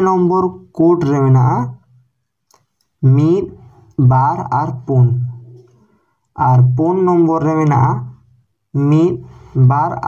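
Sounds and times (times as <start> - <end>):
man speaking: 0.0 - 2.0, 3.0 - 5.8, 6.4 - 10.0.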